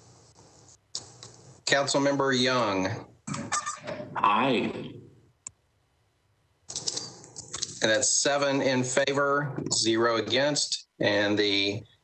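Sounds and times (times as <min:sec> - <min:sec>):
man talking: 0:01.7 - 0:03.1, 0:04.1 - 0:05.0, 0:07.8 - 0:11.9.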